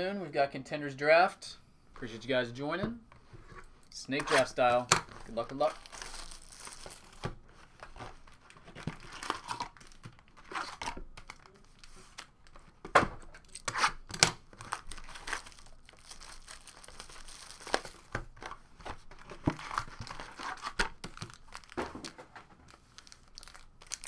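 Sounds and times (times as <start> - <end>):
foil packs crinkling and tearing: 5.2 - 7.3, 8.2 - 12.6, 14.5 - 18.6, 19.6 - 24.0.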